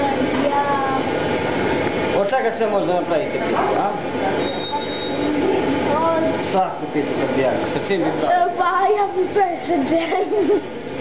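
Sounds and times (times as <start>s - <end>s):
high-pitched tone: 4.4s - 5.4s.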